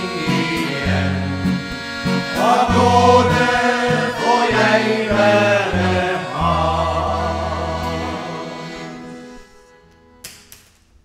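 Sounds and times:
men's choir singing a hymn: 0.0s - 9.4s
acoustic guitar: 0.0s - 10.3s
accordion: 0.0s - 10.5s.

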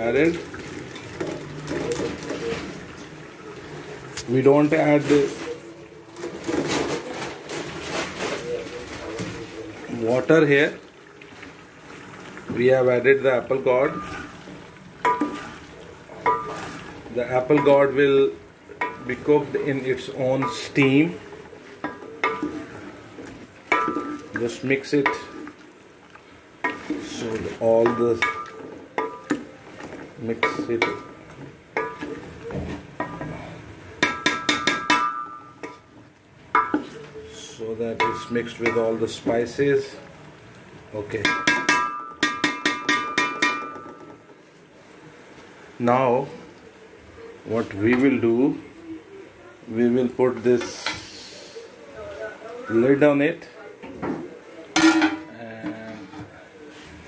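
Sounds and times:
low sizzle of frying: 0.0s - 57.0s
spoon knocking and scraping pot: 13.8s - 18.1s, 18.8s - 21.1s, 21.8s - 25.5s, 26.6s - 33.4s, 34.0s - 35.8s, 36.5s - 37.1s, 37.9s - 39.4s, 41.1s - 44.2s.

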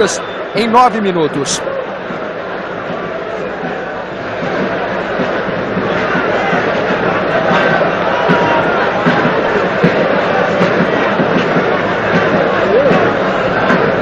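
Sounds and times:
football crowd shouting and chanting: 0.0s - 14.0s.

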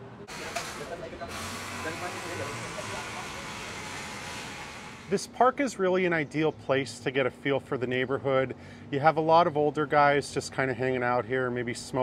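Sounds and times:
hissing kitchen noise: 0.3s - 5.3s.

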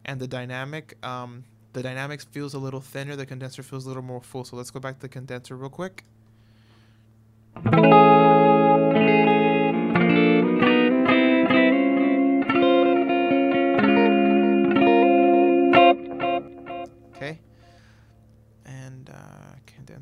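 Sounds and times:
clean electric guitar chords: 7.6s - 17.8s.

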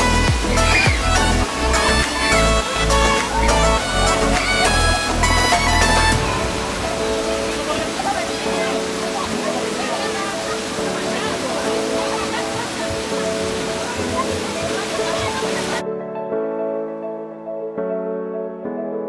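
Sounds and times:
fountain water splashing: 0.0s - 15.8s
people's voices: 0.0s - 15.9s
music: 0.0s - 19.0s.

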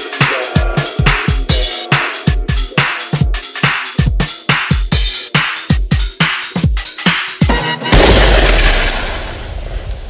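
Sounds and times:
booming dubstep impact with sub-bass: 7.5s - 10.0s.

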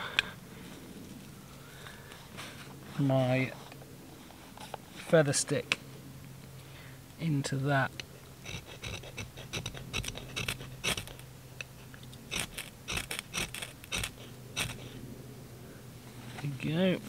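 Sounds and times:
ferro rod scraping with striker: 8.4s - 11.2s, 12.3s - 15.0s.

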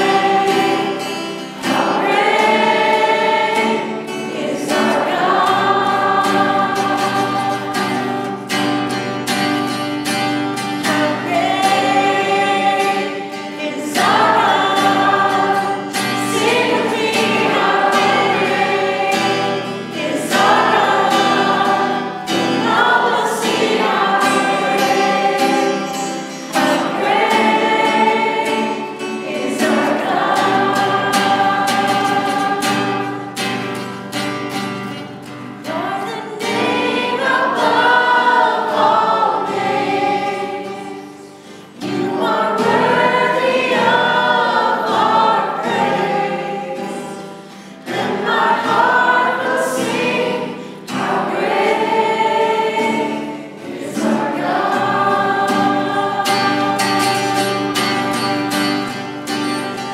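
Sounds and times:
acoustic guitar: 0.0s - 59.9s
group singing worship song: 0.0s - 59.9s.

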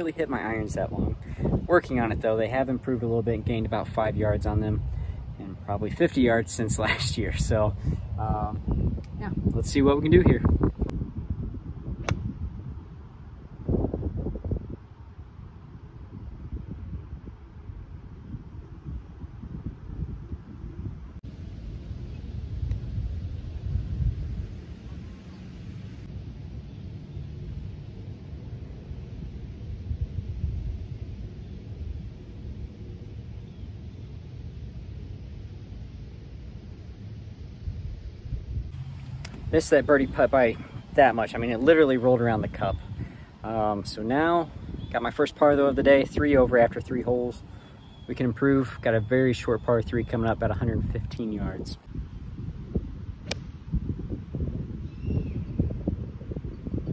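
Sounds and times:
wind buffeting microphone: 0.0s - 56.9s
golf club striking ball: 12.0s - 12.3s, 53.2s - 53.6s.

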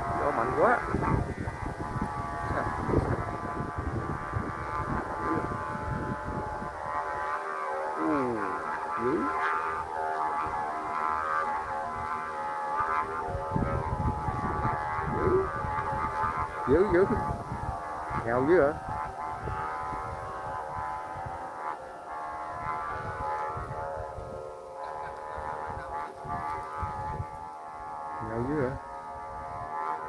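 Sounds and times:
kite flutes droning: 0.0s - 30.0s
wind rumbling on microphone: 0.0s - 30.0s.

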